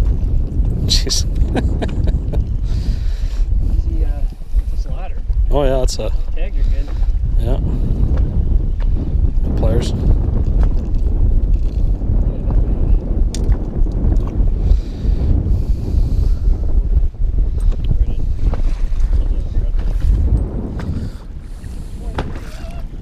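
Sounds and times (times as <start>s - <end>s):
wind buffeting microphone: 0.0s - 23.0s
waves slapping hull: 17.5s - 23.0s.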